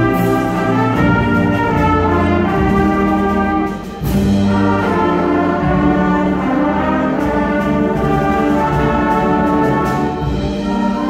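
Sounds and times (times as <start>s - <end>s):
concert band playing: 0.0s - 11.0s.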